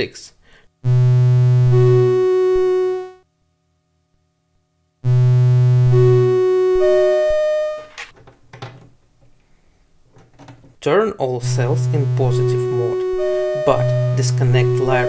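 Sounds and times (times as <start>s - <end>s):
buzzy synthesizer tone: 0.8s - 3.2s, 5.0s - 7.9s, 11.4s - 15.0s.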